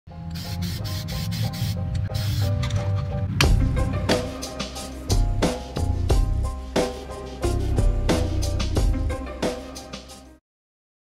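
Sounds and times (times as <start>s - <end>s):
spray paint hissing: 0.3s - 2.5s
background music with bass line: 2.3s - 10.4s.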